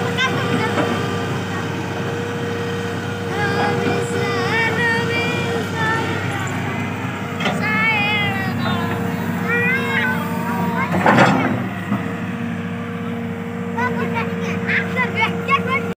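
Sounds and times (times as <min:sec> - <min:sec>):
excavator diesel engine running: 0:00.0 - 0:16.0
high warbling calls: 0:03.3 - 0:13.1.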